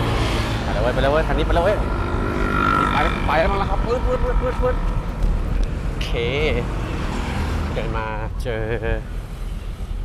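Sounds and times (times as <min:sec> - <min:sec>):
motorcycle engine passing: 0:00.0 - 0:05.6
street traffic noise: 0:00.0 - 0:10.0.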